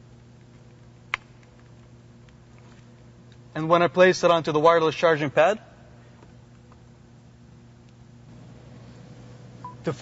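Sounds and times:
faint electrical hum: 0:00.0 - 0:10.0.

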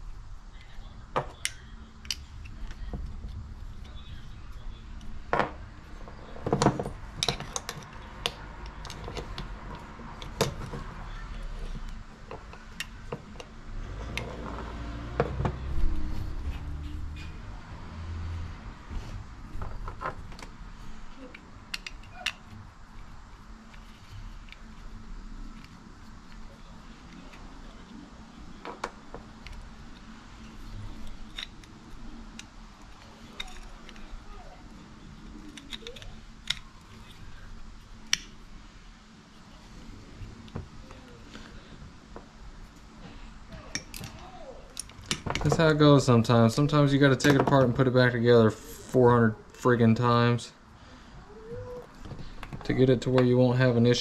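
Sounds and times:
small clicks and rattles of handling: 0:35.2 - 0:37.4.

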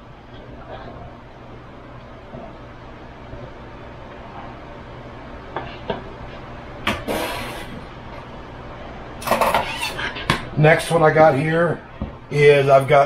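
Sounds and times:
steady low hum: 0:00.0 - 0:13.0
short scrape: 0:07.1 - 0:07.8.

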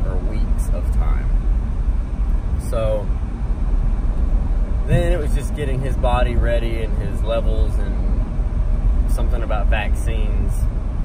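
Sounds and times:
vehicle road and engine rumble: 0:00.0 - 0:11.0.

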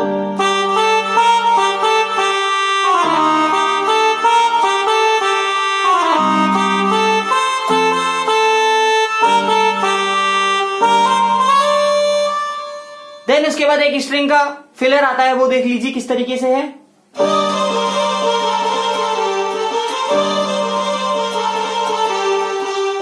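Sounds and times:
keyboard trumpet tone melody: 0:00.0 - 0:13.9, 0:17.2 - 0:23.0
held keyboard chords: 0:00.0 - 0:14.1, 0:17.1 - 0:23.0.

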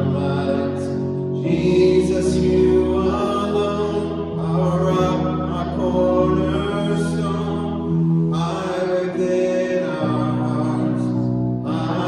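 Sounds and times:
electric keyboard chords: 0:00.0 - 0:12.0
man singing a slow song: 0:00.0 - 0:12.0.

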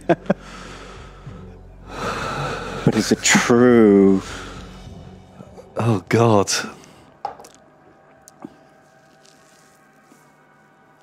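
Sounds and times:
man laughing: 0:00.0 - 0:00.4.

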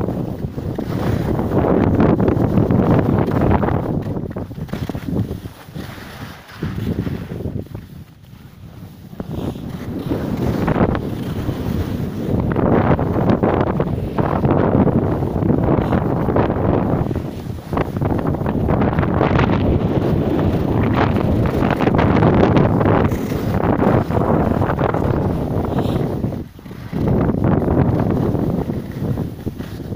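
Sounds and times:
wind buffeting microphone: 0:00.0 - 0:29.9.

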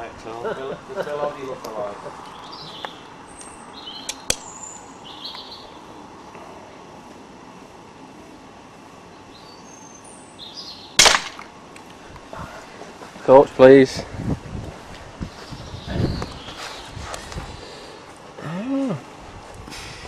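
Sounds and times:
air pistol shot: 0:11.0 - 0:11.5.

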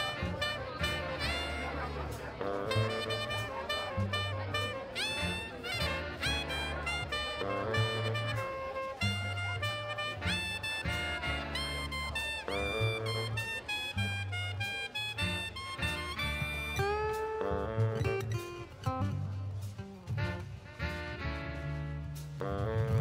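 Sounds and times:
bass line: 0:00.0 - 0:23.0
drums: 0:00.0 - 0:23.0
saxophone lead: 0:00.0 - 0:23.0.

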